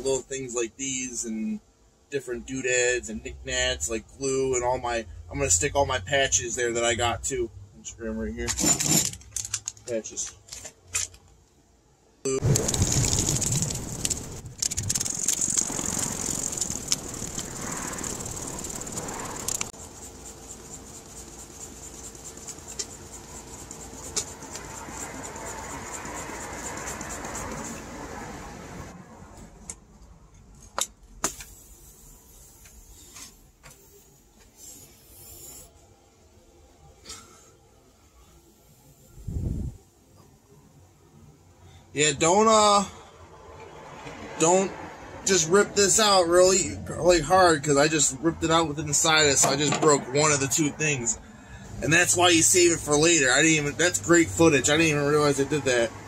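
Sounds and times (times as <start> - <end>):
handling noise and clicks: 8.4 - 11.6
plastic bag crinkling: 12.4 - 17.6.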